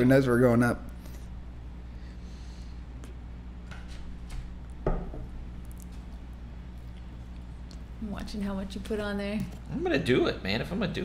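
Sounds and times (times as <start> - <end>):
steady low hum: 0.0 - 11.0.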